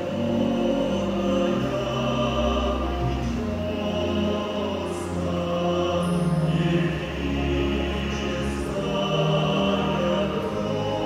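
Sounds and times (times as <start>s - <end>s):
orchestra playing slow music: 0.0s - 11.0s.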